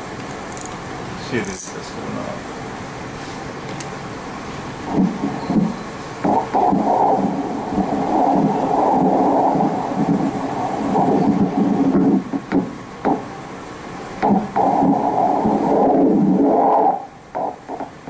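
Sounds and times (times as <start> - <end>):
doppler ultrasound blood flow: 4.7 - 18.0.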